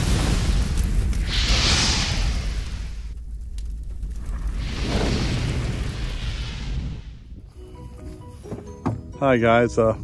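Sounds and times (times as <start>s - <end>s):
low rumble: 0.0s - 7.5s.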